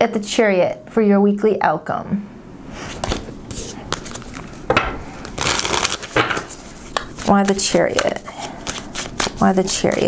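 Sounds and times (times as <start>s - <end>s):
cards being shuffled: 2.8s - 10.0s.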